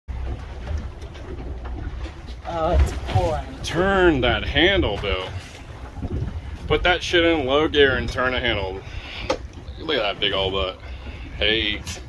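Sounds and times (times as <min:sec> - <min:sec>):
boat engine low rumble: 0:00.1 - 0:12.0.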